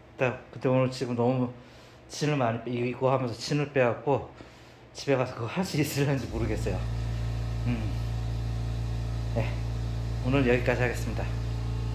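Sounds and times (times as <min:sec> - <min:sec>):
machine hum: 0:05.8 - 0:11.9.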